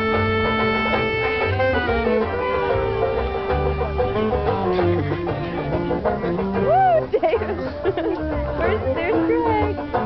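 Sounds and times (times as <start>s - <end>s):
swing band playing: 0.0s - 10.0s
laughter: 7.1s - 8.4s.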